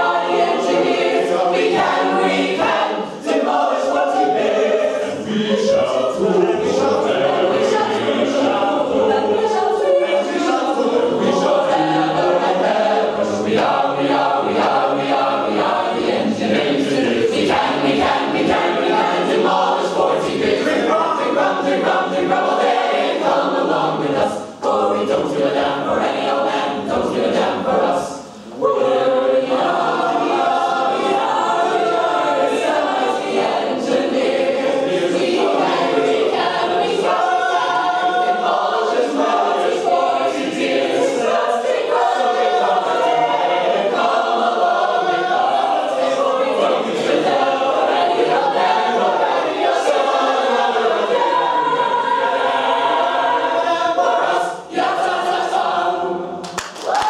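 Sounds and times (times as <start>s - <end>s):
group singing a cappella: 0.0s - 57.0s.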